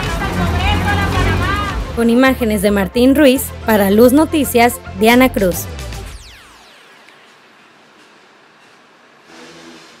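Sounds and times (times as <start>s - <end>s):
low engine hum: 0.0s - 2.0s
faint street traffic: 0.0s - 3.0s
background music: 0.0s - 7.4s.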